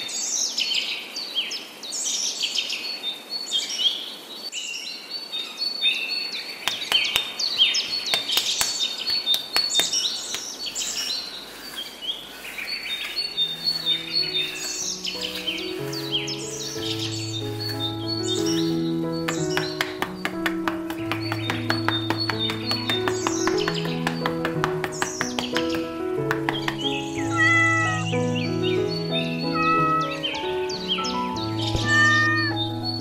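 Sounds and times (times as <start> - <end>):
small birds chirping: 0.0 - 33.0
soft sustained music notes: 12.6 - 33.0.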